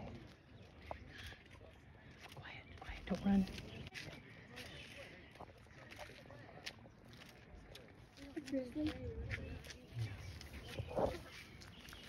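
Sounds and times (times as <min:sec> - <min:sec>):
faint hushed voices: 0:00.0 - 0:12.0.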